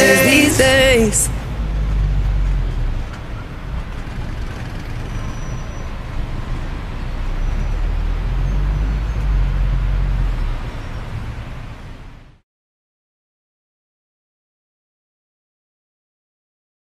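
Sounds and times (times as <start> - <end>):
vehicle rumble inside cabin: 0.0 - 12.4.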